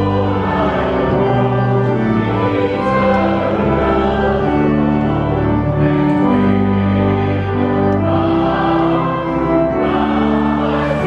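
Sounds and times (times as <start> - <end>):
choir singing: 0.0 - 11.0
church organ playing hymn chords: 0.0 - 11.0.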